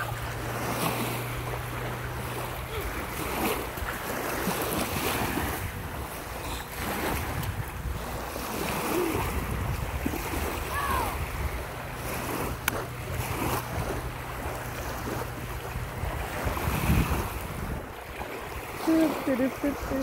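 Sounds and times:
small waves lapping on shore: 0.0 - 20.0
wind buffeting microphone: 0.0 - 20.0.

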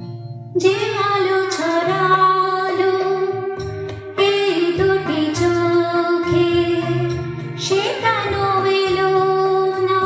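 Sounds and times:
karaoke backing track: 0.0 - 10.0
woman singing: 0.6 - 10.0.

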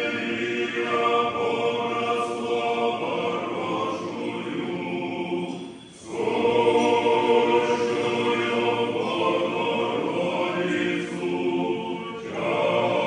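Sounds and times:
choir singing a cappella chant: 0.0 - 13.0.

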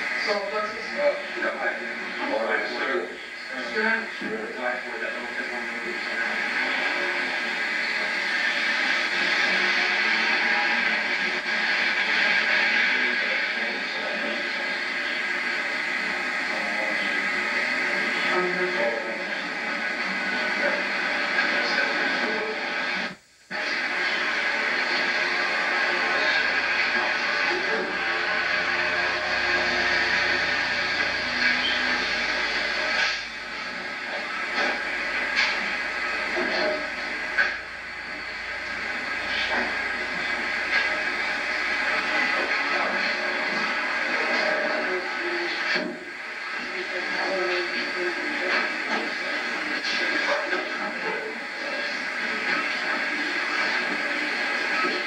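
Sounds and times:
indistinct voices: 0.0 - 55.0
tape hiss: 0.0 - 55.0.

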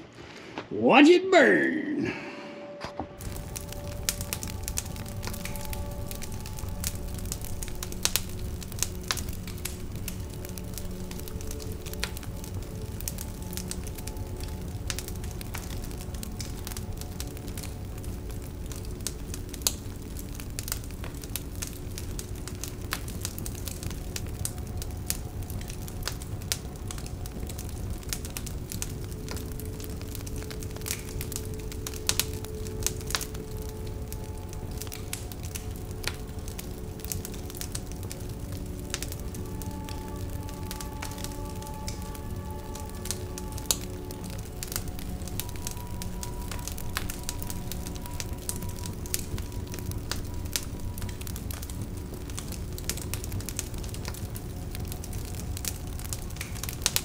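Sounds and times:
soft background music: 0.7 - 57.0
wood fire crackling and popping: 3.2 - 57.0.

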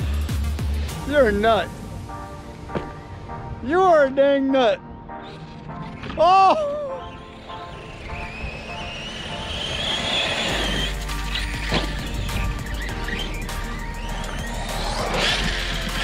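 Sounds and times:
background music: 0.0 - 16.0
electric motor whine: 5.2 - 16.0.

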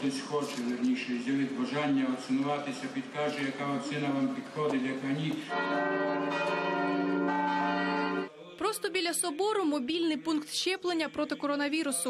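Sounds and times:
church bells ringing: 5.4 - 8.3.

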